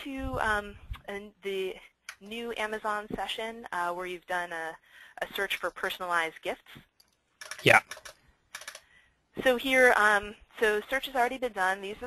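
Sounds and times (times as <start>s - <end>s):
keyboard typing: 6.9s - 9.0s.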